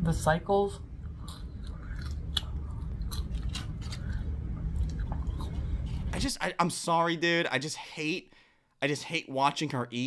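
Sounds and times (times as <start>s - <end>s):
person chewing fries: 1.1s - 6.2s.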